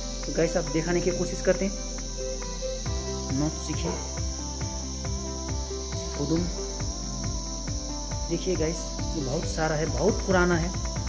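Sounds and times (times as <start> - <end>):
background music with low thumps: 0.0 - 11.0
high-pitched insect drone: 0.0 - 11.0.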